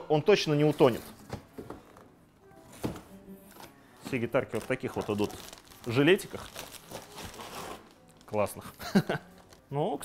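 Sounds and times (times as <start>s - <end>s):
faint music: 0.0s - 10.0s
plastic packaging rustling: 2.7s - 10.0s.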